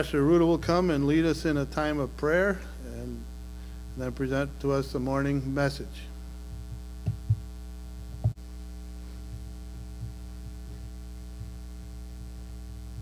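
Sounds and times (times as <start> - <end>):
electrical mains hum: 0.0 - 13.0
dull thumps: 6.5 - 7.5.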